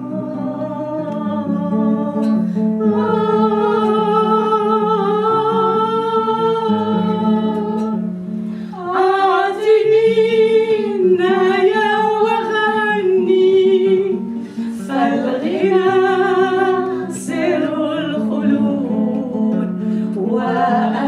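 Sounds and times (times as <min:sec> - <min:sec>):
classical guitar: 0:00.0 - 0:21.0
women singing together: 0:00.0 - 0:21.0.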